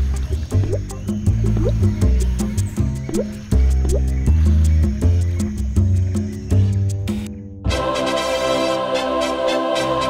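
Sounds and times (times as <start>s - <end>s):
background music with strong bass: 0.0s - 8.8s.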